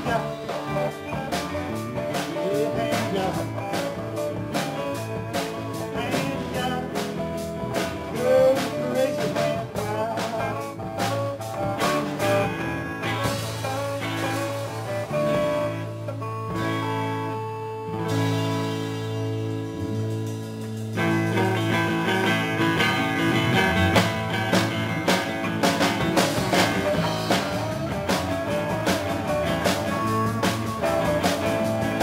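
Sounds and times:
bending guitar notes: 0:00.0 - 0:32.0
live rock band playing: 0:00.0 - 0:32.0.

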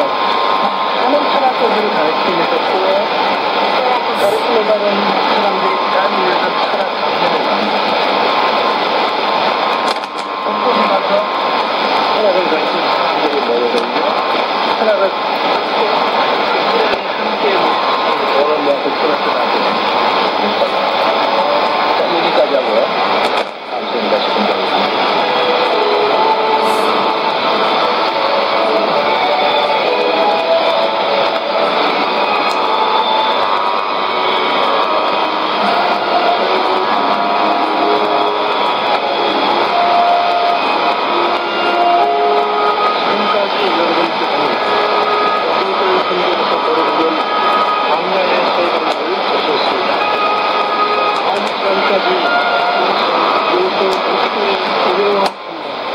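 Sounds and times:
radio speech through speaker: 0:00.0 - 0:55.9
radio static: 0:00.0 - 0:55.9.

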